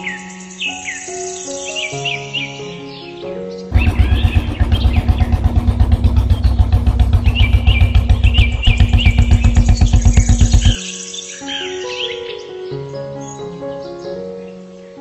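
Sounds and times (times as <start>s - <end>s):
light background music: 0.0s - 7.2s, 10.8s - 15.0s
birds chirping: 0.0s - 15.0s
motorcycle engine putter: 3.7s - 10.8s.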